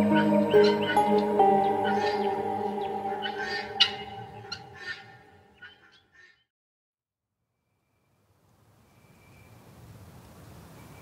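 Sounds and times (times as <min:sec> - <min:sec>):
soft music with sustained tones: 0:00.0 - 0:05.4
gull calls: 0:01.8 - 0:06.3.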